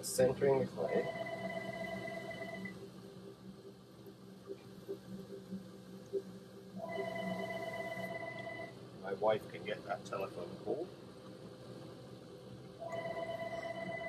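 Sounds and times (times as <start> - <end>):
telephone ringing: 0.8 - 2.7, 6.8 - 8.7, 12.8 - 14.0.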